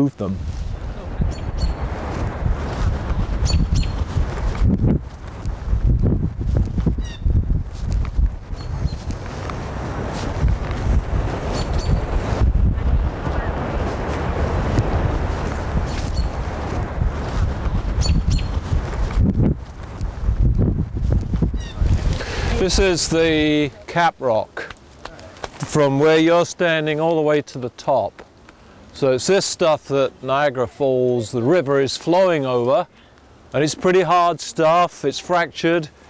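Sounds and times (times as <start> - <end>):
wind noise on microphone: 0.0 - 23.8
footsteps: 1.8 - 23.0
high bird chirps: 3.4 - 4.0, 18.0 - 18.6.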